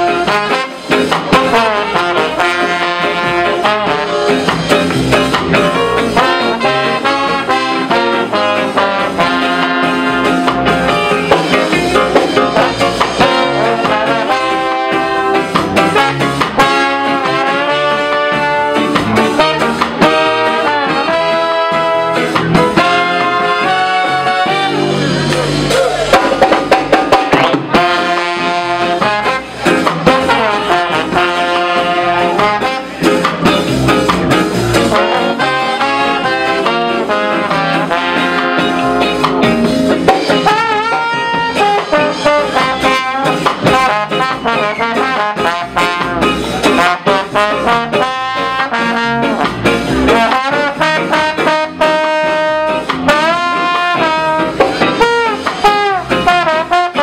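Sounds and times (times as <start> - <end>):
live ska band playing: 0.0 - 57.0.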